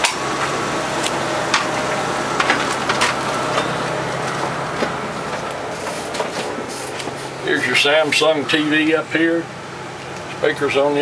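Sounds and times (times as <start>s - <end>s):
mechanical hum with hiss: 0.0s - 11.0s.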